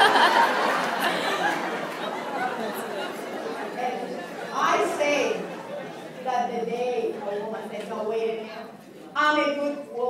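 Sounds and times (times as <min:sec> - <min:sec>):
voices chattering in a hall: 0:00.0 - 0:10.0.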